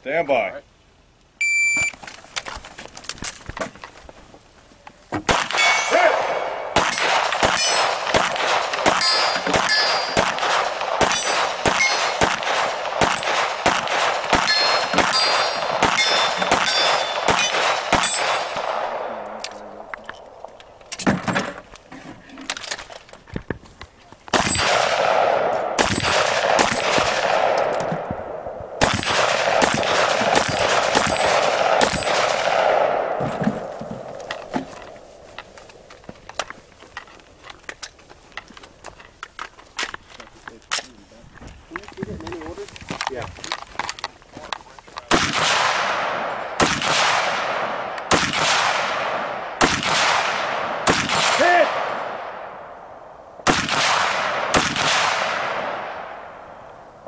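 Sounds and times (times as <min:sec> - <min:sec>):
gunshots: 0:05.2 - 0:19.8, 0:24.3 - 0:35.0, 0:45.1 - 0:52.8, 0:53.4 - 0:56.3
steel targets clanging: 0:05.5 - 0:06.1, 0:06.8 - 0:08.1, 0:08.8 - 0:10.4, 0:11.0 - 0:12.2, 0:14.3 - 0:18.6.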